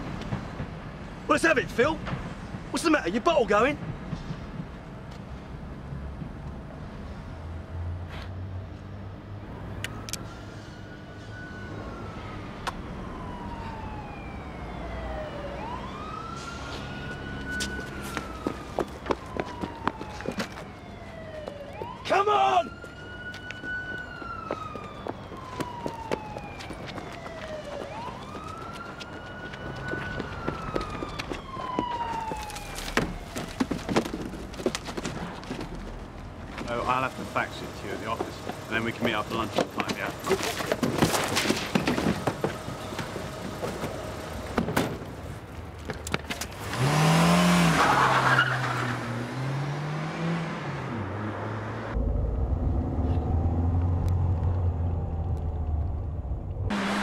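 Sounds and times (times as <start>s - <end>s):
police siren wailing: 9.6s - 34.7s, 36.6s - 44.4s.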